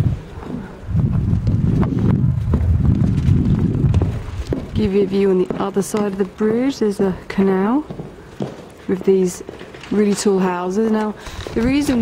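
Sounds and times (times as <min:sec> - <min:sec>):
wind buffeting microphone: 0:00.0 - 0:09.6, 0:11.2 - 0:12.0.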